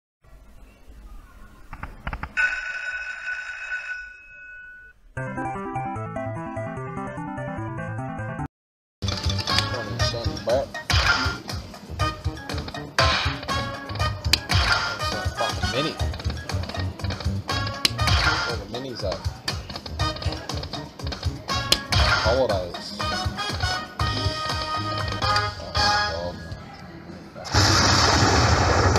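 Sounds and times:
slot machine game music: 5.2s - 18.8s, 19.9s - 26.3s.

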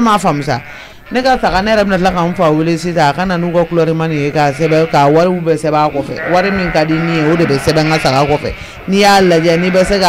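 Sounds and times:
person speaking: 0.0s - 10.0s.

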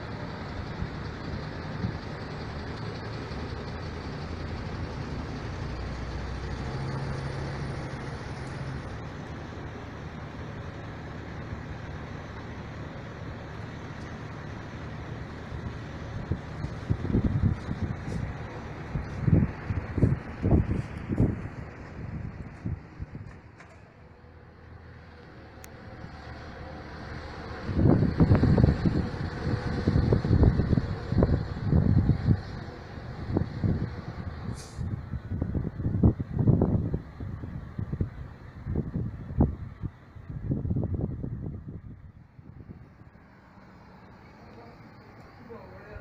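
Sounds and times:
bus moving: 0.0s - 46.0s
traffic noise: 0.0s - 46.0s
wind buffeting microphone: 15.2s - 23.6s, 27.1s - 43.2s
short hiss: 34.5s - 34.9s.

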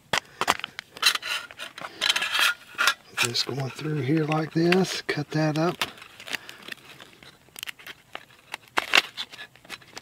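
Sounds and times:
foil pouch crinkling: 0.2s - 10.0s.

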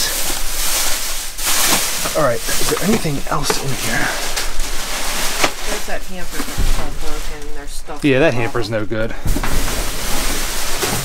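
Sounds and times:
plastic bags crinkling: 0.0s - 8.0s, 9.3s - 11.0s.

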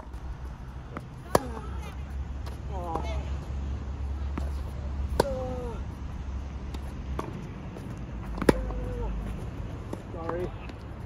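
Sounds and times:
racket hitting tennis ball: 0.9s - 3.1s, 4.2s - 6.0s, 6.6s - 10.8s.

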